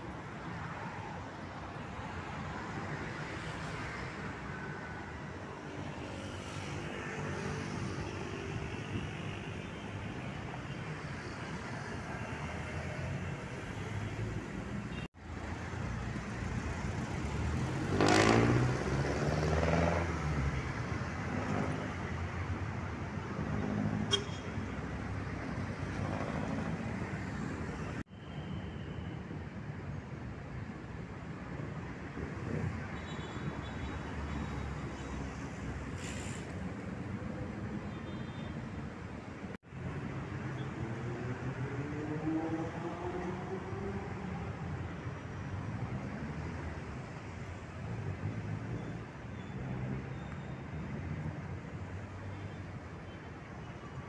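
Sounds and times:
street traffic: 0.0 - 54.0
vehicle passing: 17.3 - 20.3.

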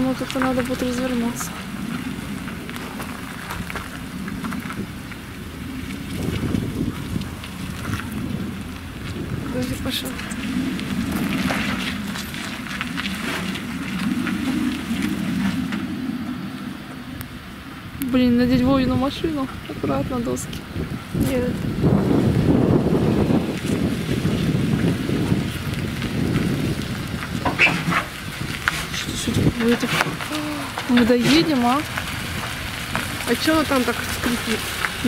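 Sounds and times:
crackling noise: 0.0 - 35.0
engine and tyre rumble: 0.0 - 35.0.

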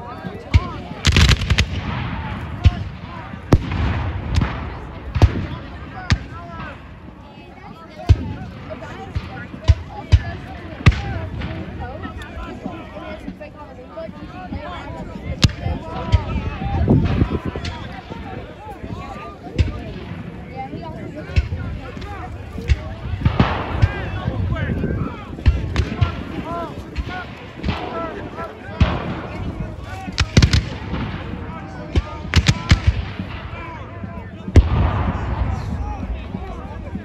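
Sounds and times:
spectators' voices: 0.0 - 37.0
musket shots: 0.6 - 6.3.

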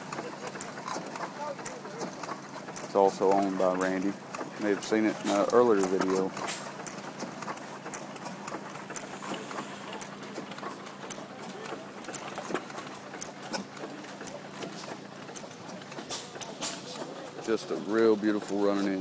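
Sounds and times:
single-cylinder engine clacking: 0.0 - 19.0.

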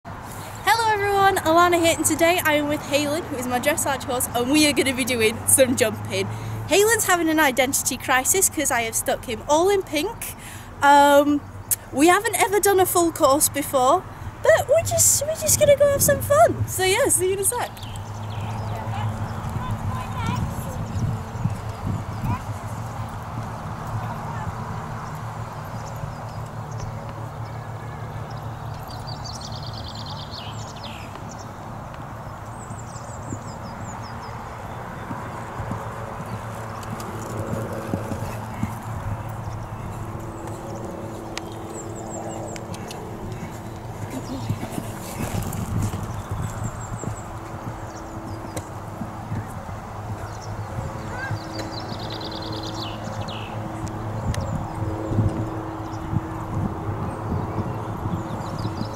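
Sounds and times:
horse hooves thudding on ground: 15.8 - 58.9
bird chirping: 16.8 - 56.2.

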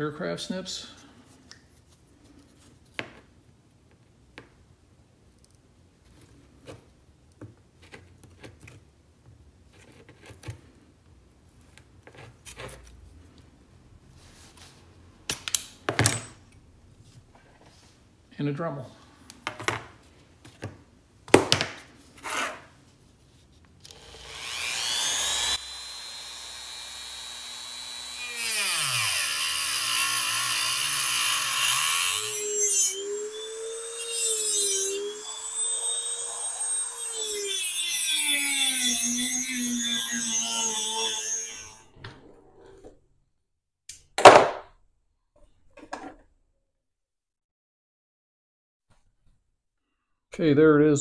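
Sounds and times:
rotary tool cutting metal: 23.9 - 41.9.

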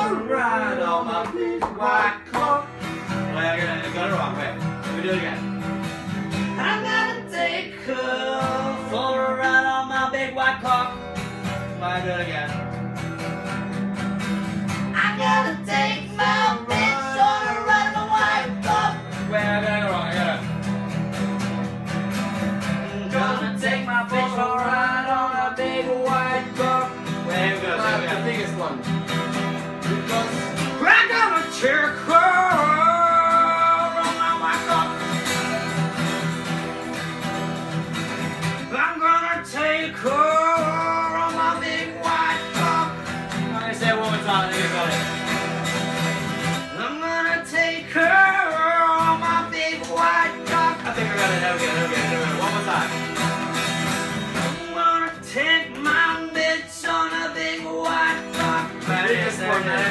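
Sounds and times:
acoustic guitar melody: 0.0 - 59.9
strummed guitar accompaniment: 0.0 - 59.9.

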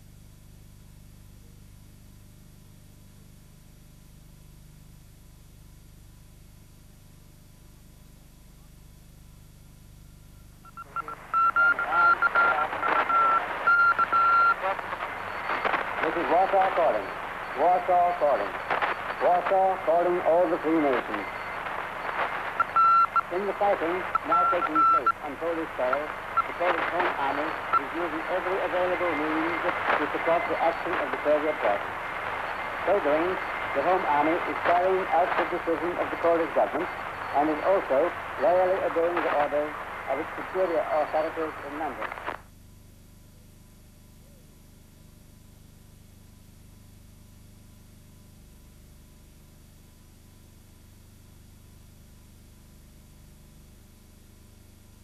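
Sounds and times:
background hiss: 10.1 - 42.5
sharp cracks: 14.8 - 16.1, 18.6 - 19.2
person speaking: 19.2 - 21.3, 23.3 - 32.0, 32.7 - 42.0.

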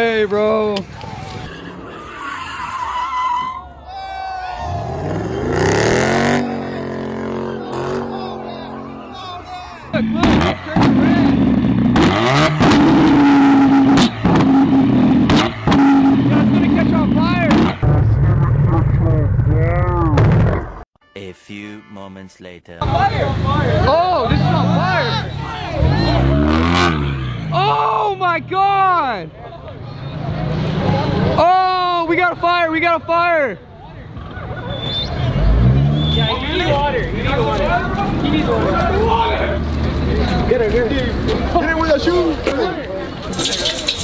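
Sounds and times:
car engine revving: 4.7 - 19.8, 22.8 - 27.5, 35.0 - 42.0
loud low rumble: 16.2 - 20.8
exhaust cracks and pops: 43.2 - 44.0.

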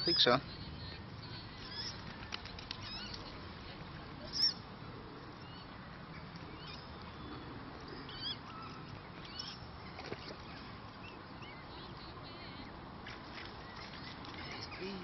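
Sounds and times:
bird calls: 0.0 - 15.0
outdoor background hiss: 0.0 - 15.0.

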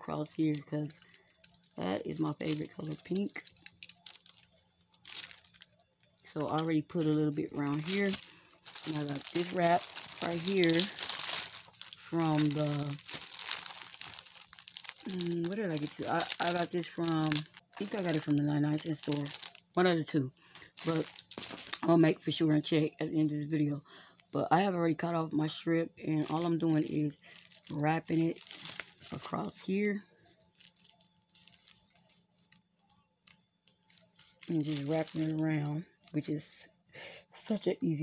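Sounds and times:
plastic packaging crinkling: 0.1 - 36.2
faint ticks and rustles: 30.2 - 35.3.

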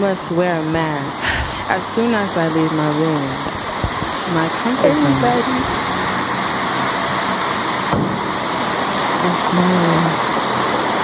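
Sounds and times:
rain falling: 0.4 - 11.0.

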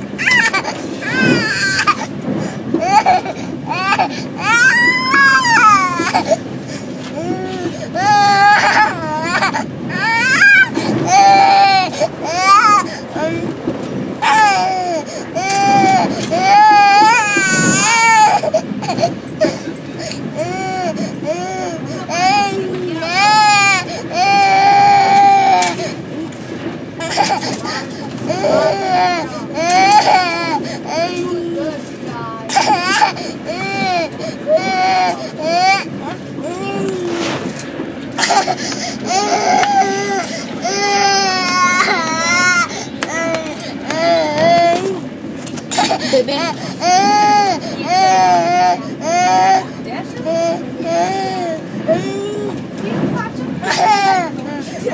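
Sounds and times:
toddler crying: 0.0 - 2.1, 2.8 - 6.4, 7.0 - 13.6, 14.2 - 26.3, 27.0 - 31.9, 32.5 - 37.6, 38.2 - 45.1, 45.7 - 52.6, 53.6 - 54.9.

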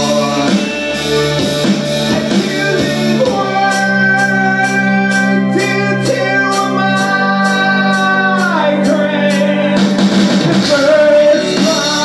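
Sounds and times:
live band held chords: 0.0 - 12.0.

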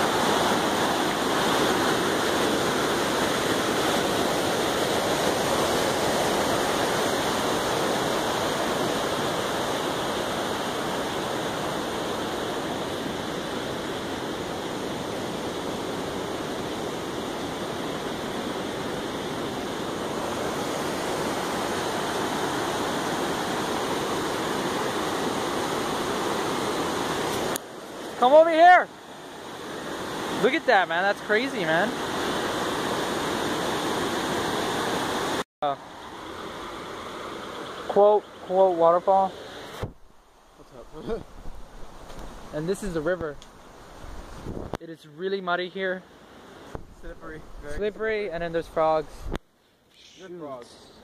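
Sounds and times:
floodwater rushing down spillway: 0.0 - 44.5.

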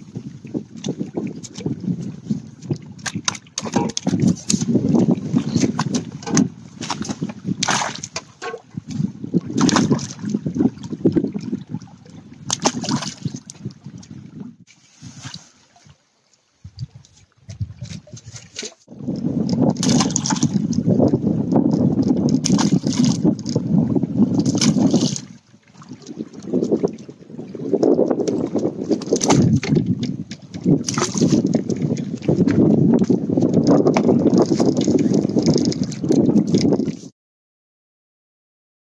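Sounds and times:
wind buffeting microphone: 0.0 - 16.0, 16.6 - 37.1
water splashing and sloshing: 0.0 - 37.1
loud splash: 6.8 - 8.6, 9.5 - 10.4, 12.5 - 13.4, 19.8 - 20.6, 22.4 - 23.2, 30.8 - 31.5.

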